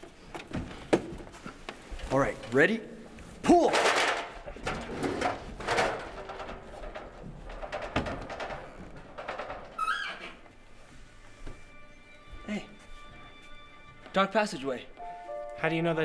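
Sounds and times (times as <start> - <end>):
film score music: 11.3 - 16.0.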